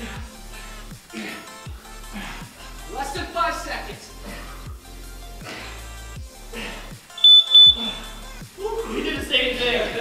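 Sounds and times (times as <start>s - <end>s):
background music with steady beat: 0.0s - 10.0s
interval timer beeping: 7.2s - 7.8s.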